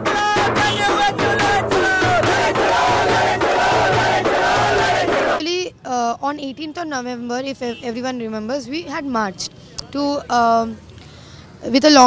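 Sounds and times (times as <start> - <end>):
crowd chanting: 0.1 - 5.4.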